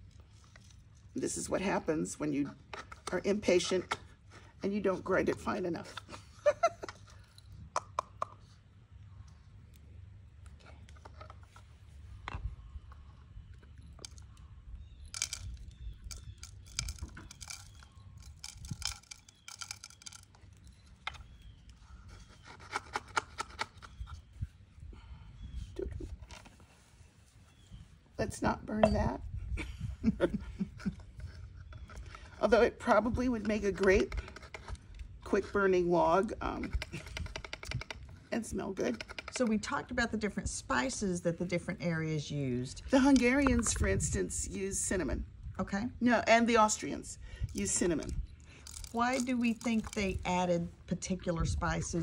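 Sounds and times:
coffee grounds pouring gritty clicks: 15.0s - 21.4s, 47.5s - 50.2s.

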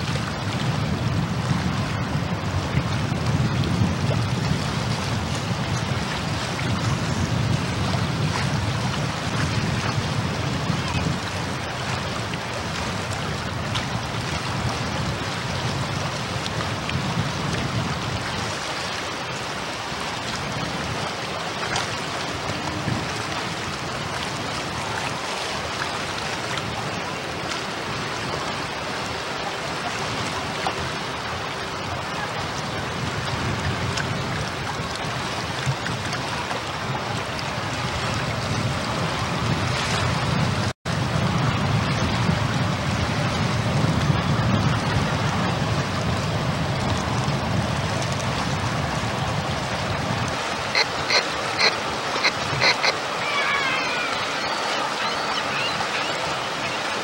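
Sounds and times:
water washing along ship hull: 0.0s - 57.0s
wind on microphone: 0.0s - 57.0s.

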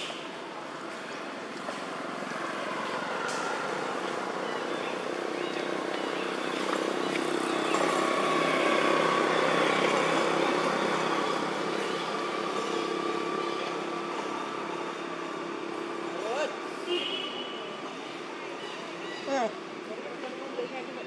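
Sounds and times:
vehicle engine humming: 0.0s - 21.0s.

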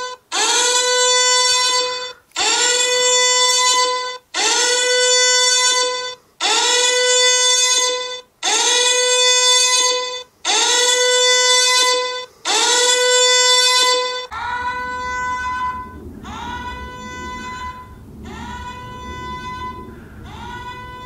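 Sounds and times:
buzzy electronic alarm tone: 10.0s - 21.0s.

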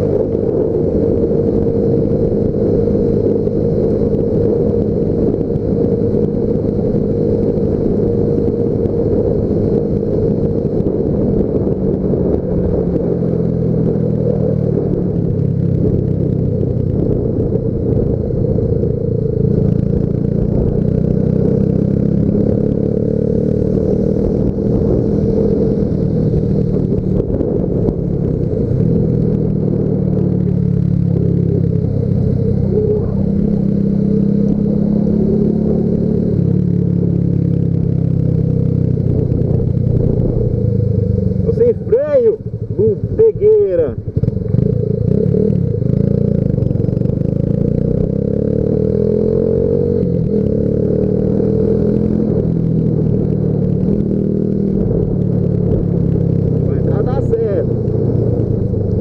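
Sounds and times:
motorcycle engine running: 0.0s - 59.0s
wind and road noise: 0.0s - 59.0s.

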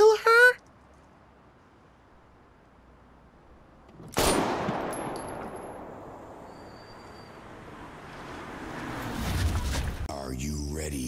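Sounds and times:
loud pistol gunshot: 4.1s - 6.0s.

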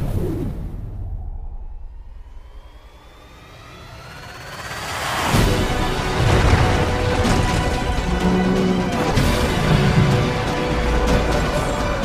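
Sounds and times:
low rumble: 0.0s - 10.1s
rising whine: 0.2s - 6.0s.

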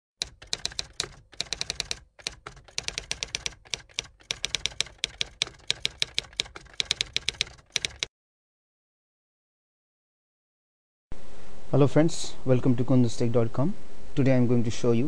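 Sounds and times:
keystroke clicks: 0.2s - 8.1s.

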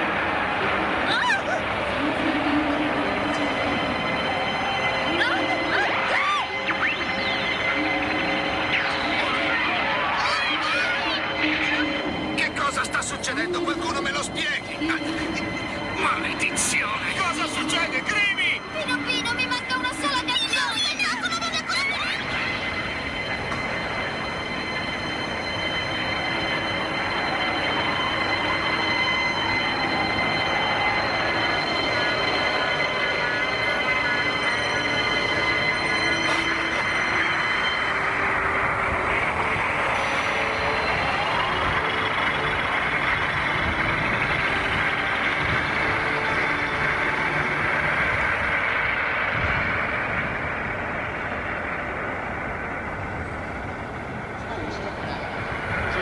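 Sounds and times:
dense rushing hum: 0.0s - 56.0s
high ringing tones: 2.3s - 56.0s
slow rising glide: 22.3s - 56.0s.

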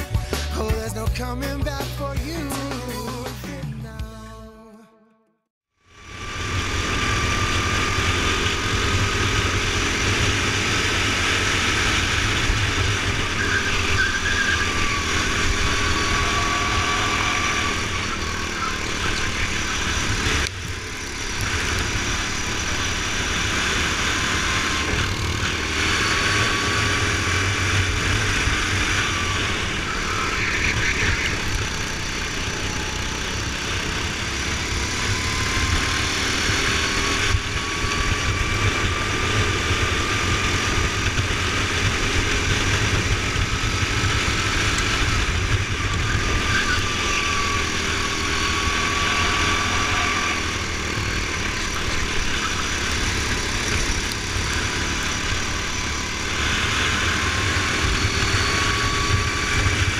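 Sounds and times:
go-kart engine running: 5.8s - 59.9s.

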